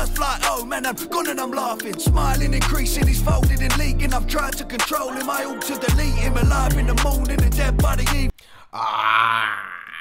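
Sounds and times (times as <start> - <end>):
rap music with heavy bass: 0.0 - 8.4
man groaning in disbelief: 8.7 - 10.0.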